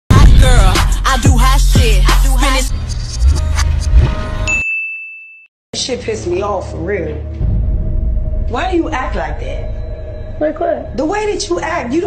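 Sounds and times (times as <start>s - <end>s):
music with vocals and heavy bass: 0.1s - 4.2s
high electronic ding: 4.5s - 5.5s.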